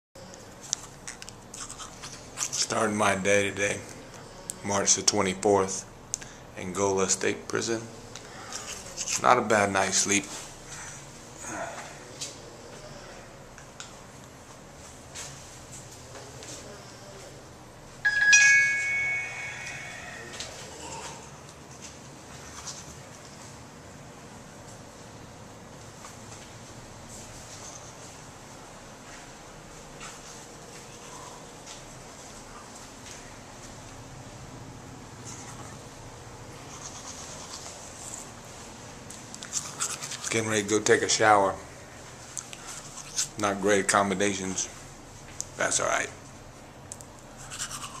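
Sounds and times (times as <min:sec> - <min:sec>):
low steady hum: 0:00.2 - 0:48.0
scratching and rubbing noises: 0:08.6 - 0:09.3, 0:36.6 - 0:38.4, 0:39.4 - 0:40.6, 0:47.4 - 0:48.0
bell-like ringing: 0:18.0 - 0:20.7.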